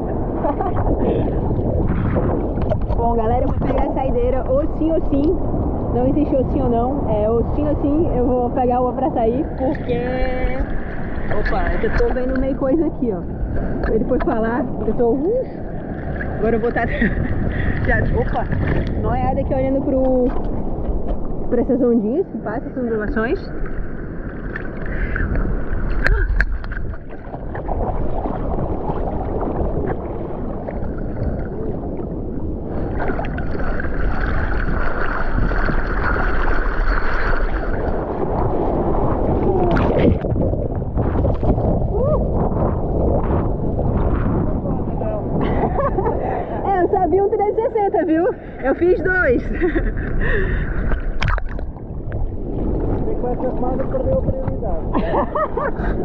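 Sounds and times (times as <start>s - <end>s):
muffled underwater gurgling: 0.0s - 56.0s
seawater sloshing and splashing: 9.6s - 21.4s, 23.2s - 44.5s, 48.4s - 56.0s.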